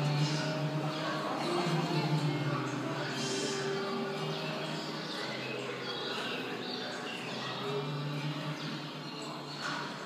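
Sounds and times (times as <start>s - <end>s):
birdsong: 0.0s - 10.0s
faint music: 0.0s - 10.0s.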